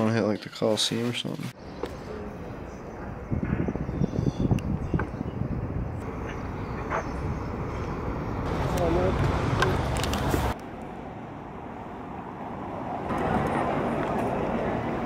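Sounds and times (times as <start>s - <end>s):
street traffic: 0.0s - 15.0s.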